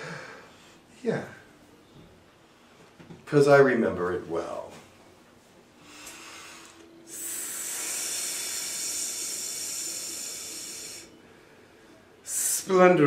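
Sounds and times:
man breathing: 0:00.0 - 0:01.0, 0:05.8 - 0:12.5.

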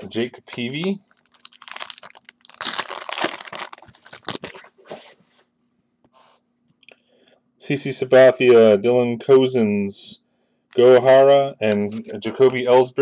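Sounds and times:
faint steady hum: 0:00.0 - 0:13.0
foil wrapper crinkling and tearing: 0:01.1 - 0:04.6.

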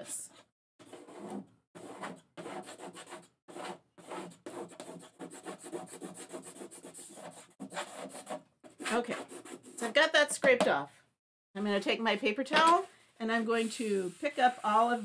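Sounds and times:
scraper scraping chalkboard: 0:00.8 - 0:10.1, 0:12.6 - 0:15.0.

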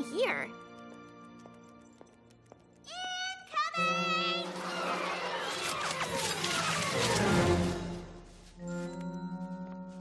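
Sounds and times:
sustained background music: 0:03.7 - 0:10.0.

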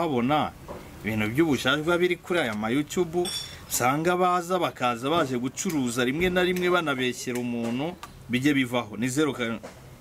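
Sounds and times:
high metallic clink: 0:03.2 - 0:03.6.

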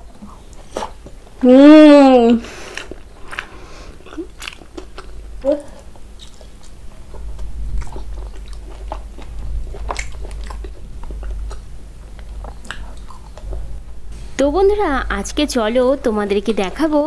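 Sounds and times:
biting and chewing: 0:02.7 - 0:13.8.

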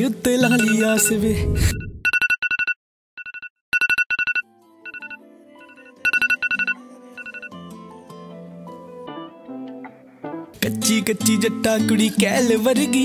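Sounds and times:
soft music: 0:00.0 - 0:01.4, 0:04.4 - 0:13.0
phone alert rapid high beeps: 0:00.4 - 0:07.6.

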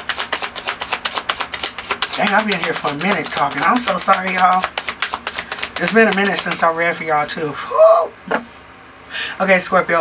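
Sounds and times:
cards being shuffled: 0:00.0 - 0:06.8.

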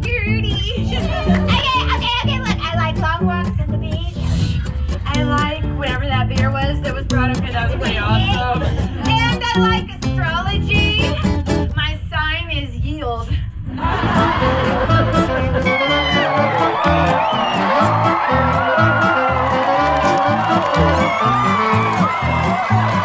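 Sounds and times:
woman singing: 0:05.1 - 0:12.4
plucked string accompaniment: 0:13.8 - 0:23.0.

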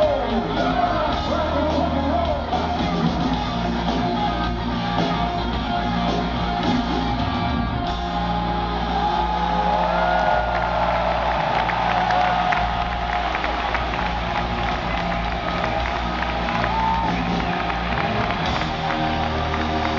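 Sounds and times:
arena crowd cheering: 0:00.0 - 0:19.9
hard rock band playing: 0:00.0 - 0:19.9.

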